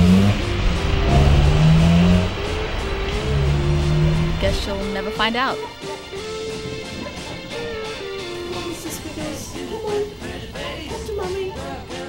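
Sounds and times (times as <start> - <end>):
background music: 0.0 - 12.0
car engine revving: 0.0 - 12.0.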